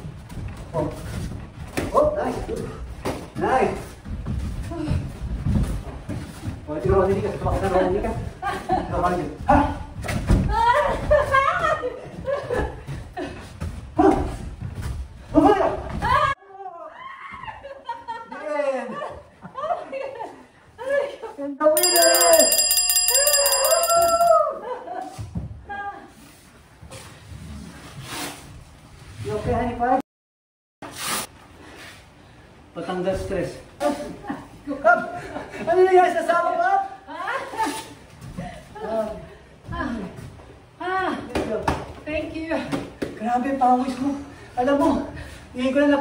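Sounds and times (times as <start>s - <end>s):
bell ringing rapidly: 21.8s - 24.5s.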